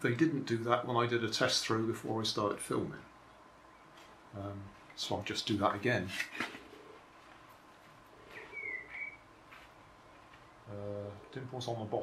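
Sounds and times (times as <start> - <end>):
bird call whistle: 8.4 - 9.2.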